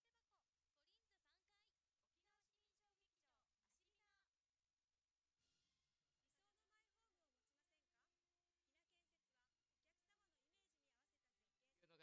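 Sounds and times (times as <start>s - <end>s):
faint talking voices: 8.8s - 12.0s.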